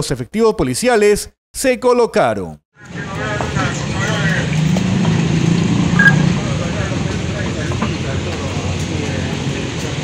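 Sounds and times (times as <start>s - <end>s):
people talking: 0.0s - 4.6s, 6.0s - 10.0s
vehicle engine running: 2.9s - 10.0s
high beep: 6.0s - 6.2s.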